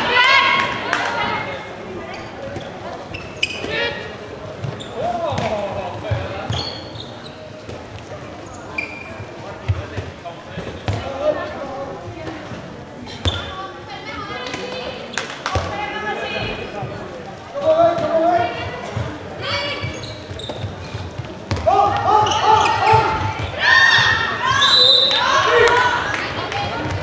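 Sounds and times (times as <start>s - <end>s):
ball bouncing on hall floor: 19.8s - 24.2s
players shouting: 21.6s - 27.0s.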